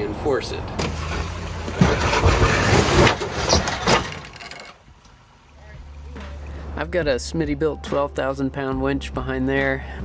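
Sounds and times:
suv engine at crawling speed: 0.6 - 4.3
knocks and scrapes against rock: 1.1 - 4.8.

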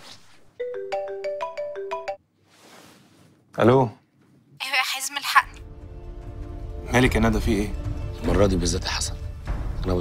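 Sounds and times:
mobile phone ringtone melody: 0.6 - 2.2.

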